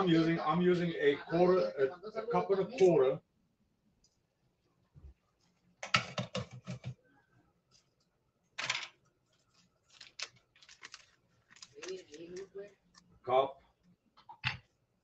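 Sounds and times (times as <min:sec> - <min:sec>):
kitchen items clicking and knocking: 0:05.8 - 0:07.0.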